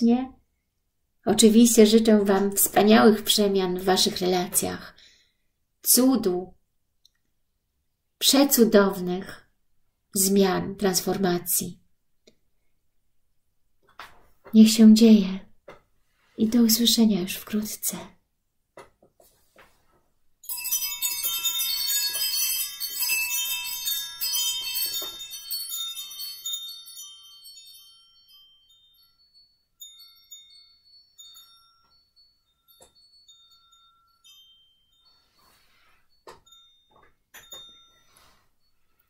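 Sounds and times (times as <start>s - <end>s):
soft clicks and rustles: 18.8s - 20.2s
metal chimes ringing: 20.4s - 39.0s.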